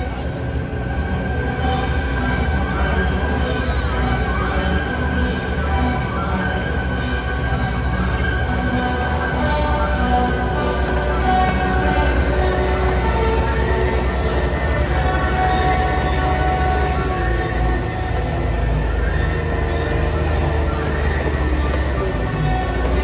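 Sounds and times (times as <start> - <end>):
diesel engines rumbling: 0.0 - 23.0
music with long held chords: 0.0 - 23.0.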